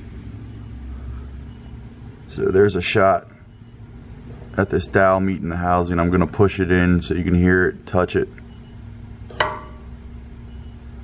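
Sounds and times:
sharp ringing knock on housing: 0:09.3 - 0:09.9.

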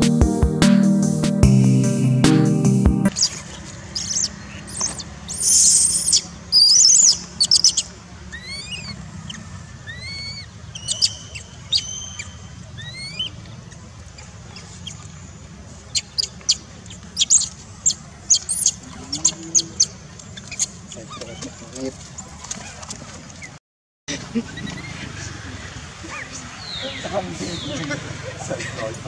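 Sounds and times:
baby monkey screaming: 0:04.0 - 0:13.3, 0:17.2 - 0:21.5, 0:24.4 - 0:25.2.

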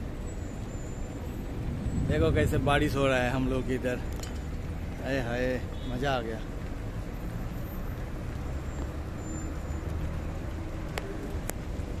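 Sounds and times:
traffic rumble on wet street: 0:00.0 - 0:12.0.

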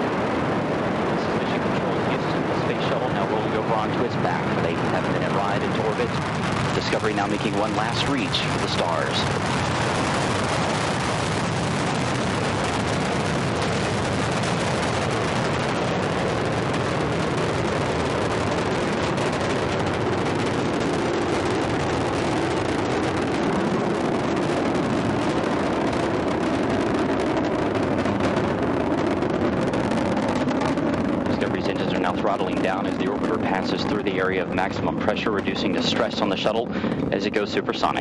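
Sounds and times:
rocket roar with crackle: 0:00.0 - 0:38.0.

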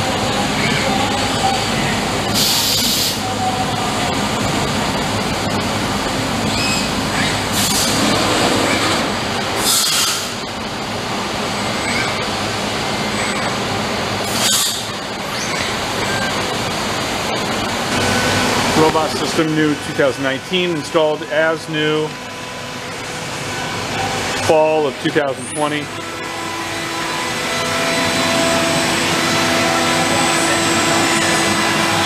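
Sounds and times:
shop machinery hum: 0:00.0 - 0:32.0
hissing air bursts: 0:02.3 - 0:03.2, 0:09.6 - 0:10.4.

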